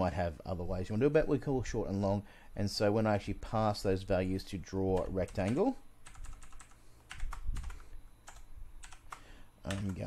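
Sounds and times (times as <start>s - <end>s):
computer keyboard typing: 4.9s - 10.0s.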